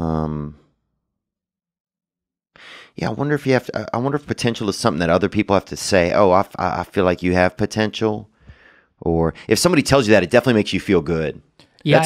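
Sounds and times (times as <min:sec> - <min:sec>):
man's short breath in: 0:08.4 - 0:08.9.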